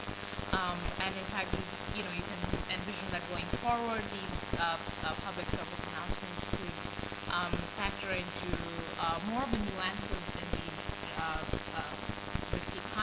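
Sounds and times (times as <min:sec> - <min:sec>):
crackling hiss: 0:00.0 - 0:13.0.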